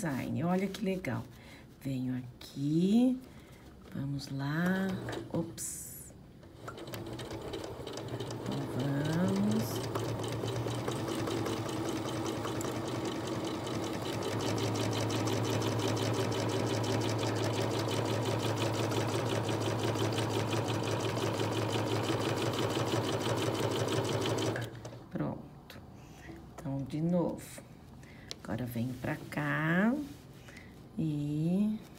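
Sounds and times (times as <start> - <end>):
electric sewing machine stitching: 6.5 - 24.8.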